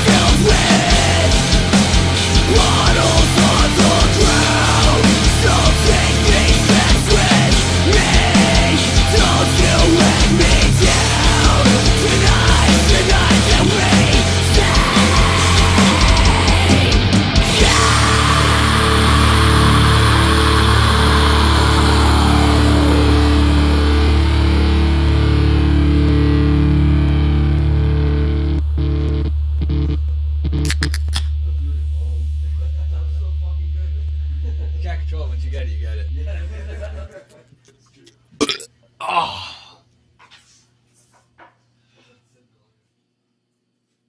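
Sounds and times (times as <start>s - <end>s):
distorted guitars sustained chord: 0.0s - 30.7s
man burping loudly: 38.4s - 39.8s.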